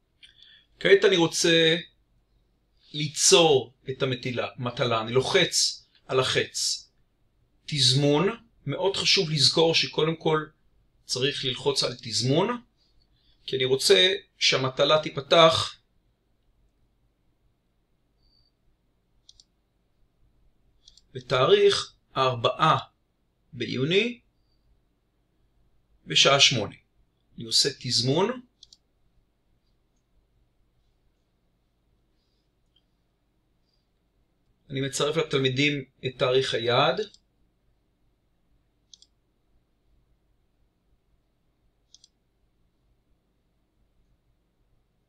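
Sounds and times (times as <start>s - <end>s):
computer mouse clicks: 19.2s - 19.6s, 20.8s - 21.2s, 28.6s - 28.9s, 38.8s - 39.2s, 41.8s - 42.2s
computer mouse double click: 41.9s - 42.2s.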